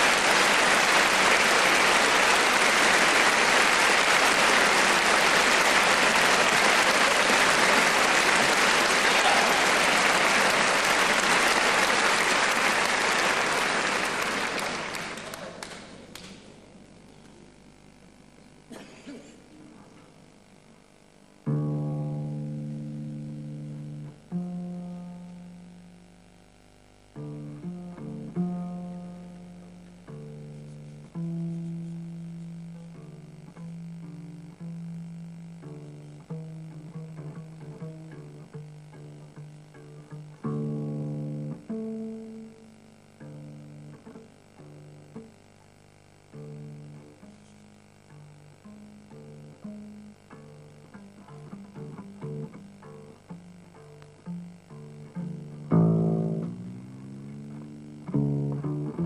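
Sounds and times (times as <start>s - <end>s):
plucked double bass: 21.4s - 26.0s, 27.1s - 45.4s, 46.3s - 59.0s.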